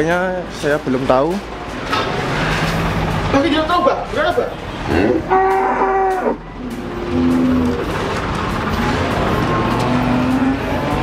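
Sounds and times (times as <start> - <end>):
steady background noise: 0.0 - 11.0
cattle mooing: 4.9 - 8.0, 9.4 - 11.0.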